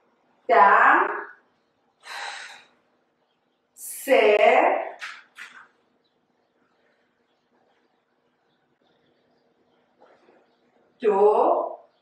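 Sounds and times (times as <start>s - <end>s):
woman's audible breath: 2.0s - 2.8s.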